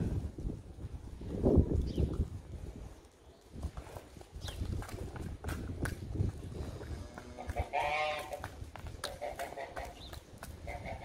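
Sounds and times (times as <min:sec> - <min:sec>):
cow hooves on wet brick: 0:01.2 - 0:11.0.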